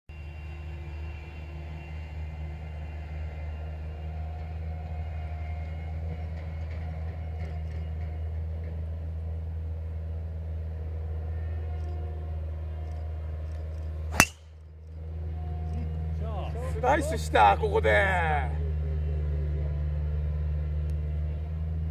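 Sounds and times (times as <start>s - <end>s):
golf ball struck by driver: 14.1s - 14.5s.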